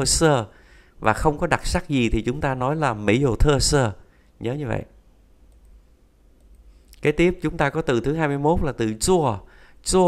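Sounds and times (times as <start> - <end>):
steady low hum: 0.0 - 10.0
computer mouse clicking: 5.5 - 5.8, 6.4 - 7.0.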